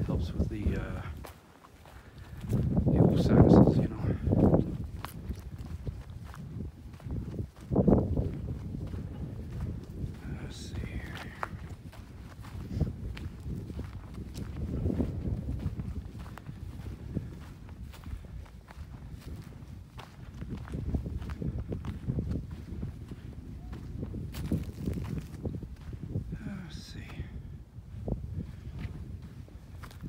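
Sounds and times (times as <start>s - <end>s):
footsteps on dry leaves: 0.0s - 21.5s, 23.9s - 25.6s.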